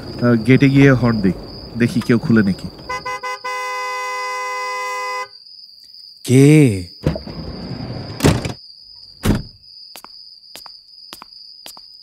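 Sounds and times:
car horn honking: 0:02.8 - 0:05.3.

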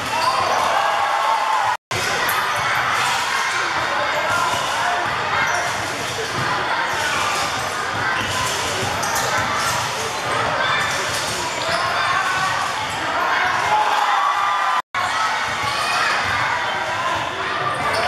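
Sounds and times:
hubbub of children's voices: 0:00.0 - 0:18.0.

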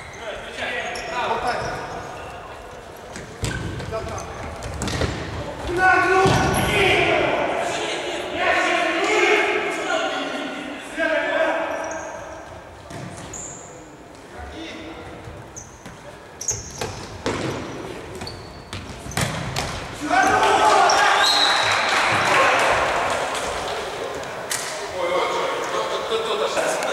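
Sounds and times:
players shouting: 0:05.5 - 0:12.4, 0:20.0 - 0:26.9.

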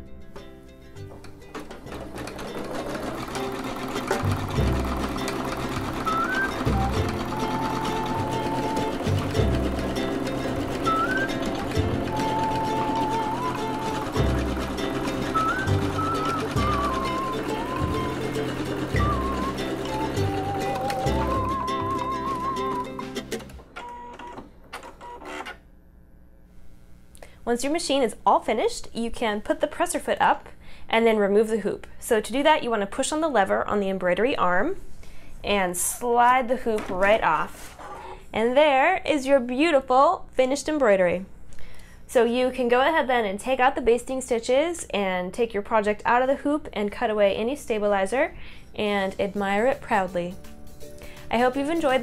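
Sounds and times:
sewing machine stitching: 0:01.5 - 0:24.3.

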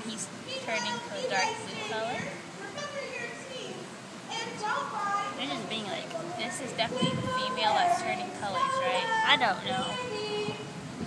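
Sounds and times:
background chatter with children: 0:00.0 - 0:11.0.

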